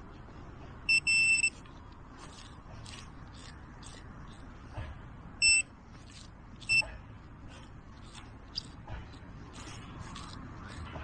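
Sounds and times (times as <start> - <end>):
metal detector beeps: 0.9 - 1.6, 5.4 - 5.7.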